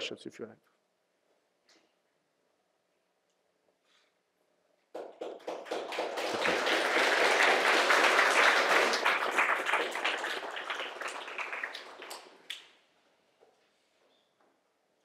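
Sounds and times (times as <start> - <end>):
audience applauding: 5.0 - 12.7.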